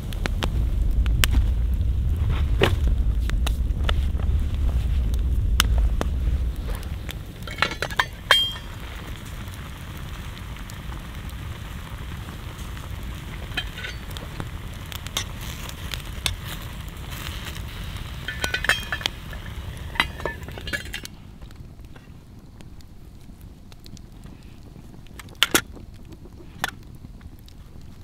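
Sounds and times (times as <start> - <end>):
campfire burning: 0.0 - 28.0
fire popping and clicking: 0.0 - 28.0
food sizzling in a pot: 7.4 - 21.0.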